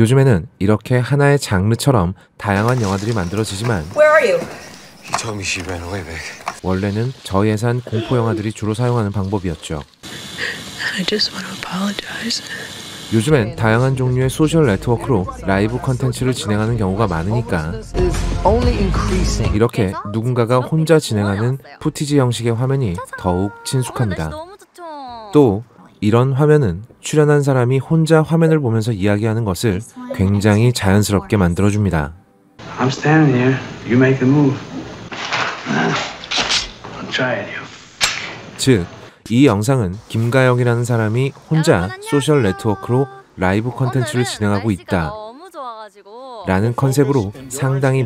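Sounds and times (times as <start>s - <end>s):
sharp hiss of breath: 10.0s - 10.9s, 12.2s - 13.1s.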